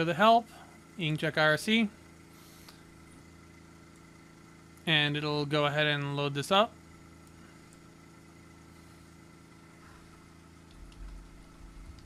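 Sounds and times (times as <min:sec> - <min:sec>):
man talking: 0:00.0 - 0:02.0, 0:04.9 - 0:06.8
faint machine hum: 0:00.0 - 0:12.0.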